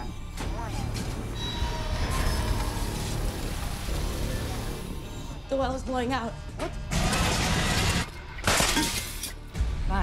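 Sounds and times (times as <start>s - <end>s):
dramatic music score: 0.0s - 10.0s.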